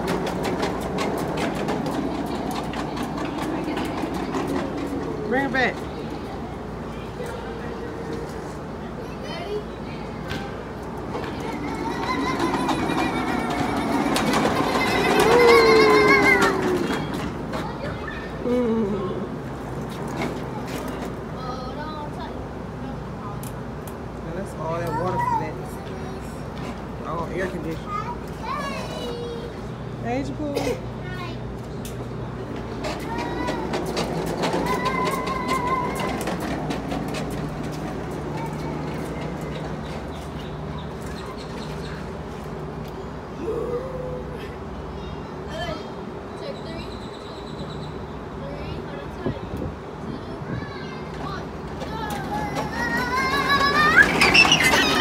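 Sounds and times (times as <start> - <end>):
plastic wheels rolling on concrete: 0.0 - 9.6, 10.6 - 18.5, 19.4 - 22.4, 31.1 - 42.9, 48.5 - 55.0.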